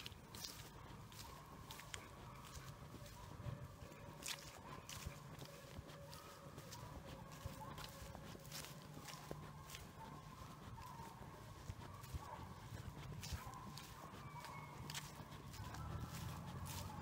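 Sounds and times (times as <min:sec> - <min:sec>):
footsteps crunching dry leaves: 0:00.0 - 0:17.0.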